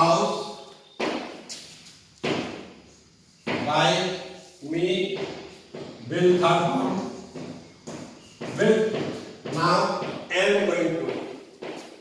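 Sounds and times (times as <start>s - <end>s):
man's voice echoing: 0.0s - 0.6s, 3.6s - 5.4s, 6.0s - 7.2s, 8.4s - 11.4s.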